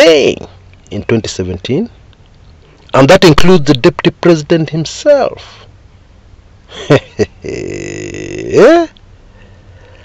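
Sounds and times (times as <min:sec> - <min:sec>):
man chuckling: 0:06.7 - 0:08.6
man's low buzzy voiced sound: 0:07.2 - 0:08.9.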